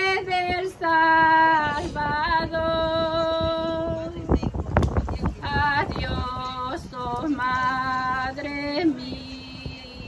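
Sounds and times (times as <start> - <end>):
woman singing a hymn: 0.0 - 4.6, 5.2 - 10.0.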